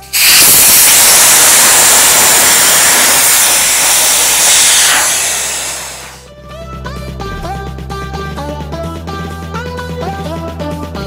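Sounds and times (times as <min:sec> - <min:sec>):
air hissing out of valve: 0:00.0 - 0:06.3.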